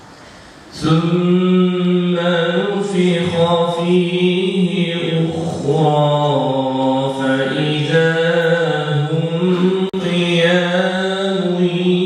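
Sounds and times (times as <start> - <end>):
man chanting into a microphone: 0.7 - 12.0.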